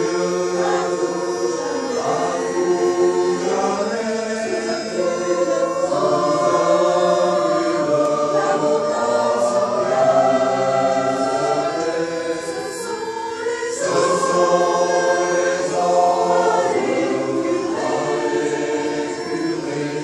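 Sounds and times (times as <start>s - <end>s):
mixed choir singing in harmony: 0.0s - 20.0s.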